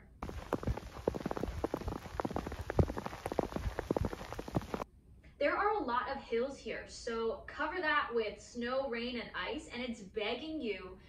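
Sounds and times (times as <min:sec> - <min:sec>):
rain drops hitting surfaces: 0:00.0 - 0:04.8.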